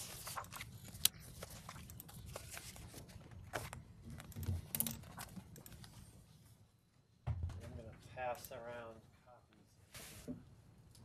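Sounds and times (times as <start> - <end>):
papers rustling on a desk: 0.0 - 6.2.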